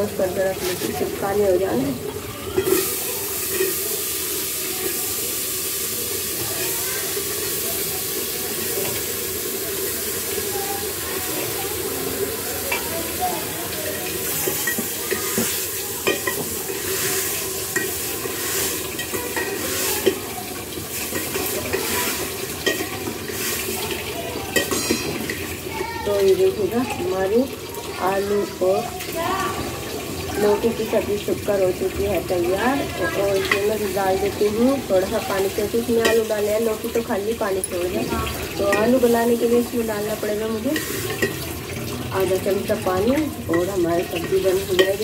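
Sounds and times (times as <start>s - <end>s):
vegetables sizzling in a pot: 0.0s - 45.0s.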